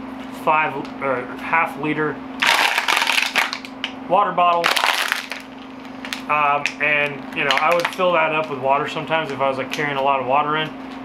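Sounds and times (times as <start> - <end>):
plastic bottle crinkling: 2.4 - 3.7, 4.5 - 8.5.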